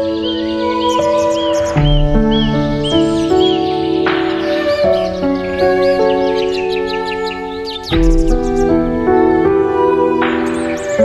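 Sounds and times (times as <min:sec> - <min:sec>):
bird chirps: 0:00.0 - 0:11.0
music of held chords: 0:00.0 - 0:11.0.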